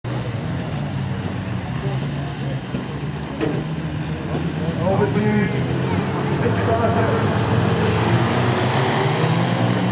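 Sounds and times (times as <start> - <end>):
stock car engines droning: 0.1 - 9.9.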